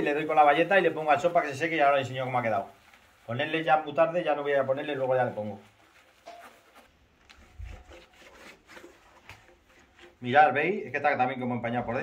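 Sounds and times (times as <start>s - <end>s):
sponge wiping plastic lens: 0.0s - 10.4s.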